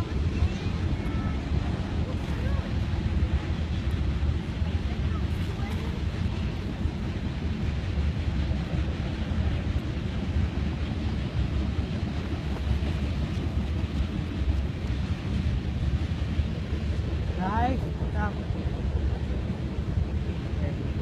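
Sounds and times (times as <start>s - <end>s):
freight train cars rumbling: 0.0s - 21.0s
wind buffeting microphone: 0.0s - 21.0s.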